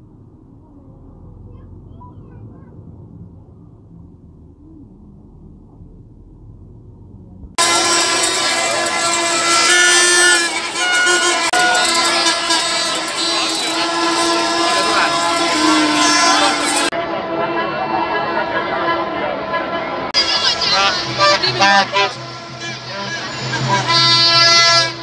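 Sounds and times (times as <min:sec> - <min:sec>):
steady horn-like tone: 0:07.5 - 0:17.0, 0:20.2 - 0:25.0
crowd of fans: 0:07.6 - 0:25.0.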